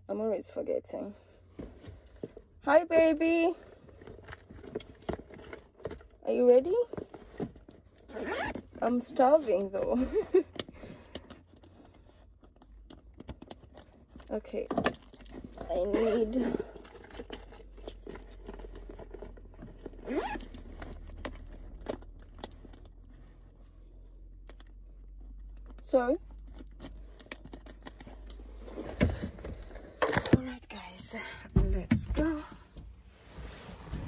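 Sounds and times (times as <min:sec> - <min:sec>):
rasping zip: 0:08.0 - 0:09.7, 0:19.9 - 0:20.8.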